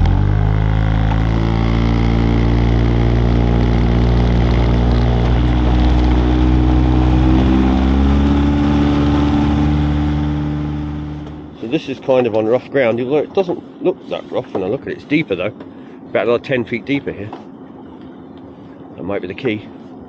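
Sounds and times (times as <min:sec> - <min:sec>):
boat engine running: 0:00.0 - 0:20.0
water rushing along hull: 0:00.0 - 0:20.0.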